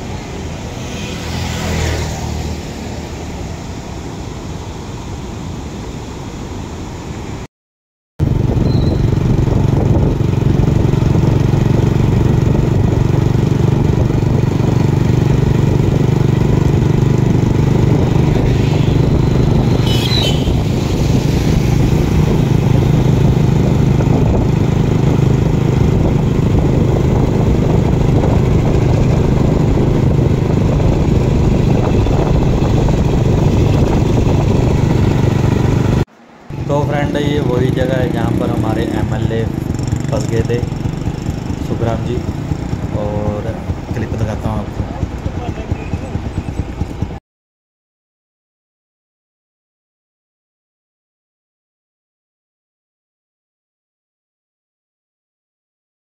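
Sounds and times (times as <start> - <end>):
motorbike engine running: 8.2 - 47.2
wind rushing over microphone: 8.2 - 47.2
brief high chirp: 8.6 - 9.0.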